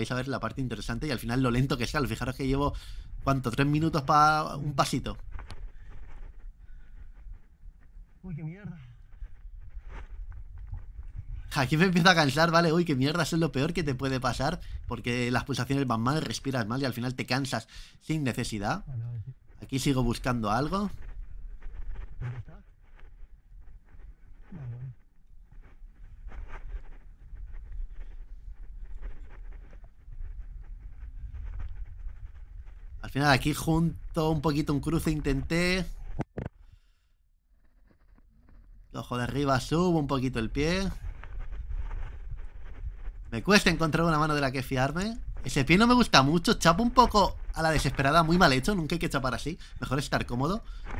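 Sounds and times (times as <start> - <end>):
wind rumble on microphone: 0.0 - 15.9, 18.9 - 36.4, 37.8 - 50.9
person breathing heavily: 2.7 - 3.2, 17.7 - 18.0.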